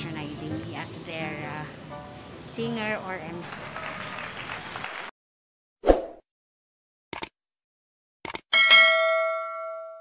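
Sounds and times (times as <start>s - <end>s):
bell ding: 8.5s - 10.0s.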